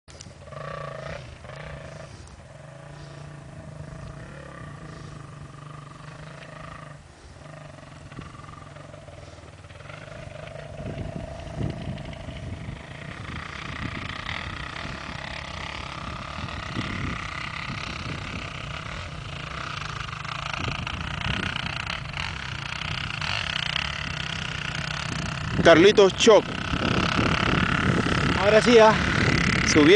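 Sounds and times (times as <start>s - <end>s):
dirt bike engines: 0.1s - 29.9s.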